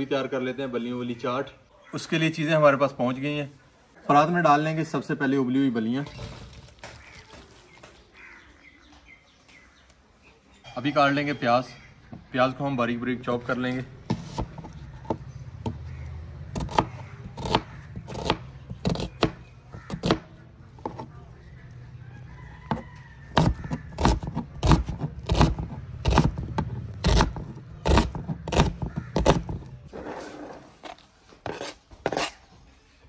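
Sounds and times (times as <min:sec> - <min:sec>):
knife chopping on cutting board: 0:14.1 - 0:15.8, 0:16.6 - 0:21.1, 0:23.4 - 0:29.6.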